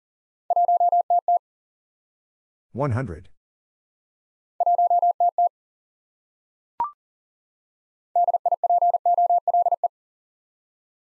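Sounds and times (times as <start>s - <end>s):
morse code beeps: 0.5s - 1.4s, 4.6s - 5.5s, 8.2s - 9.9s.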